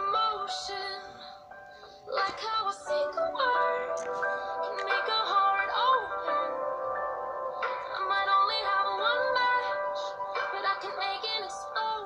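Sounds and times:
song playing: 0:00.0 - 0:12.0
high singing voice: 0:07.6 - 0:12.0.

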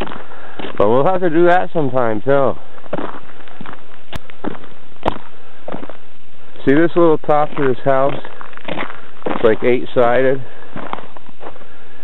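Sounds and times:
footsteps on packed snow: 0:00.0 - 0:11.8.

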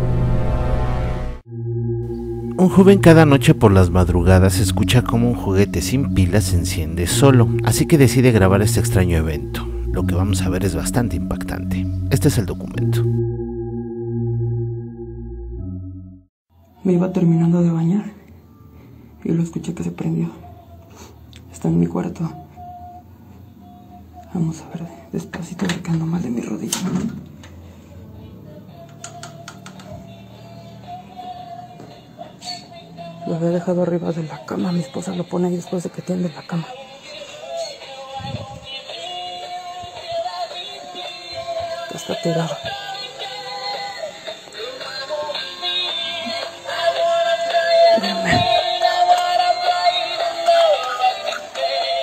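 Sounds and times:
toy playing electronic song: 0:01.5 - 0:15.0, 0:34.8 - 0:52.0
faint steady high tone: 0:01.5 - 0:15.8.

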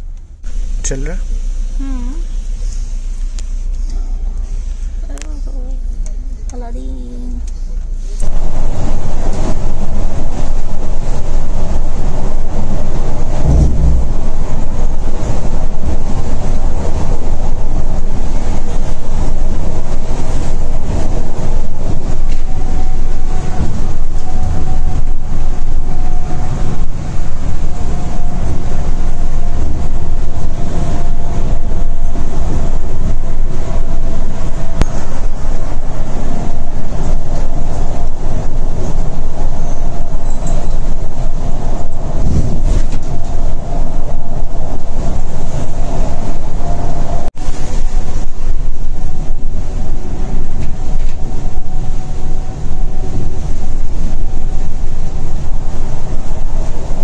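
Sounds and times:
coach engine and road rumble: 0:00.0 - 0:57.0.

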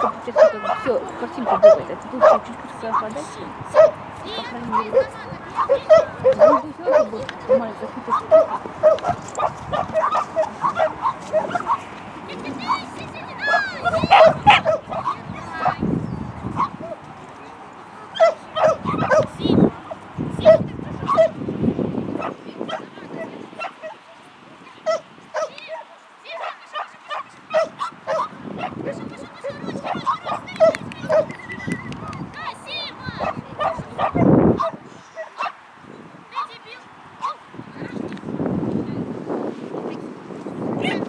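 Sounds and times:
dog barking in high yips: 0:01.5 - 0:04.0, 0:04.7 - 0:11.9, 0:13.4 - 0:15.8, 0:16.5 - 0:17.0, 0:18.1 - 0:19.4, 0:20.4 - 0:21.4, 0:24.8 - 0:25.8, 0:26.4 - 0:32.4, 0:33.2 - 0:35.6, 0:37.2 - 0:37.4.

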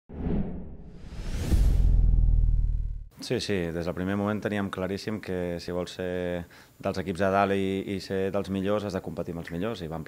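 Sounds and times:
rising whoosh with high tone: 0:00.1 - 0:03.1
deep steady bass: 0:00.9 - 0:03.1.

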